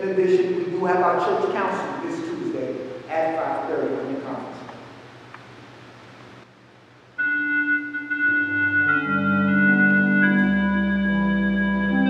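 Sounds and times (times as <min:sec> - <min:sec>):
organ playing held chords: 0:07.2 - 0:12.0.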